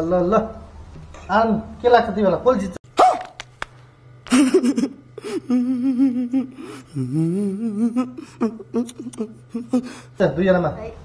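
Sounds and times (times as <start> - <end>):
person singing a wavering tune: 5.4 - 10.0.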